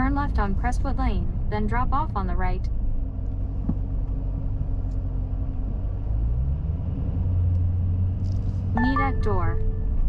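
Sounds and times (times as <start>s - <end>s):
car engine inside cabin: 0.0s - 10.0s
road rumble: 0.0s - 10.0s.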